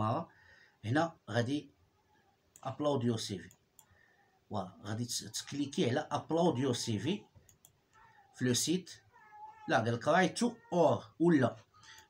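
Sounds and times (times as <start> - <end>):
man speaking: 0.0 - 1.8, 2.6 - 3.5, 4.5 - 7.3, 8.4 - 11.7.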